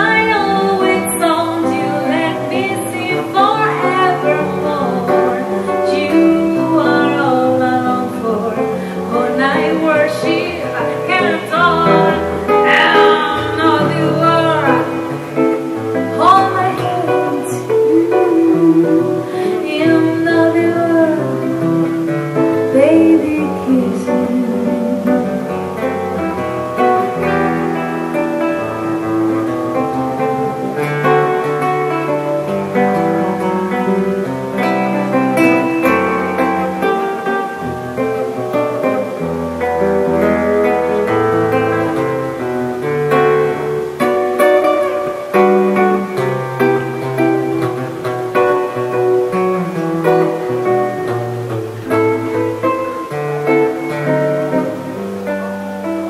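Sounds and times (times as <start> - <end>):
nylon-string guitar solo: 0.0 - 56.0.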